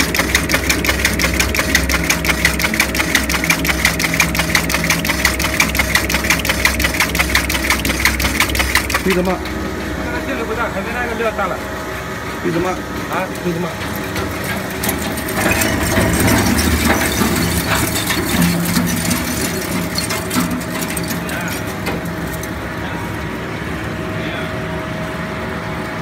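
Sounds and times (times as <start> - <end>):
crate cracking and clattering: 13.4 - 22.6.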